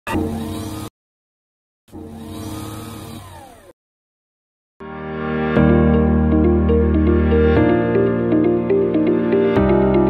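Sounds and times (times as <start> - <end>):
robot arm mechanical whir: 0.1 - 0.9, 1.9 - 3.8.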